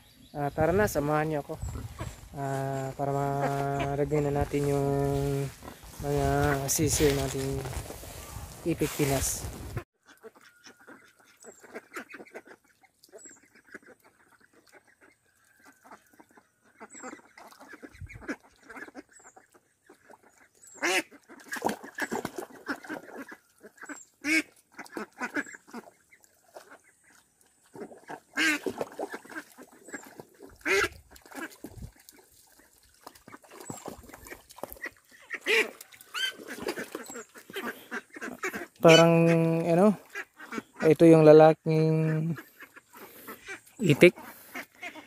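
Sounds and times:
ducks quacking: 0.0s - 45.0s.

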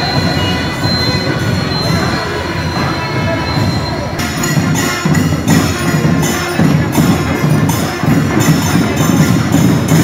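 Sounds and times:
crowd voices: 0.0s - 10.0s
steady high ringing tones: 0.0s - 10.0s.

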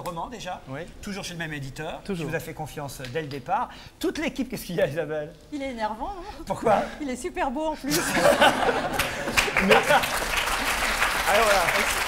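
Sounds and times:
laughter: 7.8s - 10.3s
audience applauding: 8.7s - 12.0s.

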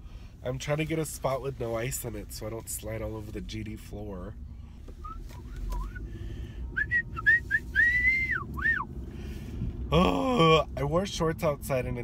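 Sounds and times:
car hum on the move: 0.0s - 12.0s
person whistling: 5.0s - 6.1s, 6.8s - 8.9s.

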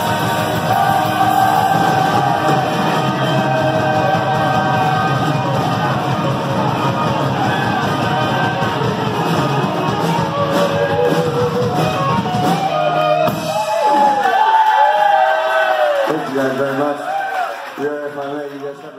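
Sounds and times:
sung vocals: 0.0s - 6.3s
rock band playing: 0.0s - 14.8s.

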